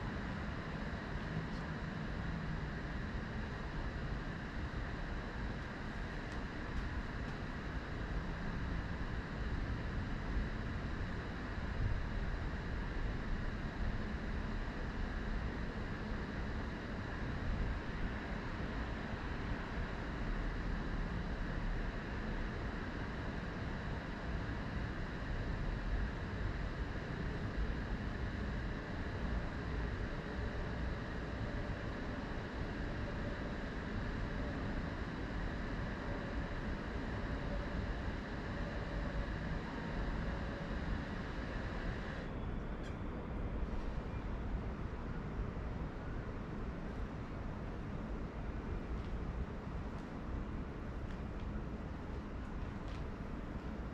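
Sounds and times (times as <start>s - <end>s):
constant low rumble: 0.0s - 53.9s.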